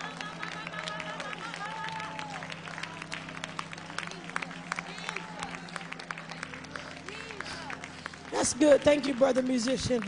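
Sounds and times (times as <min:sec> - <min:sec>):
congregation clapping: 0:00.0 - 0:10.0.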